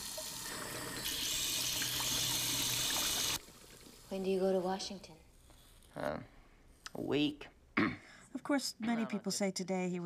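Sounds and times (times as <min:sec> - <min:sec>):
water running from tap into sink: 0:00.0 - 0:04.6.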